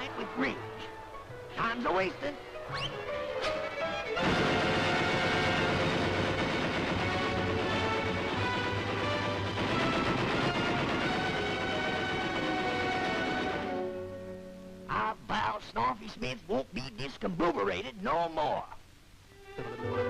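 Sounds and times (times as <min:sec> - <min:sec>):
orchestral cartoon music: 0:00.0 - 0:14.5, 0:19.5 - 0:20.0.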